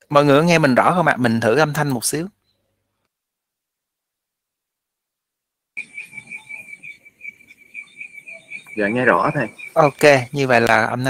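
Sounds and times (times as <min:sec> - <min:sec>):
high-pitched trilling tone: 0:05.8 - 0:10.6.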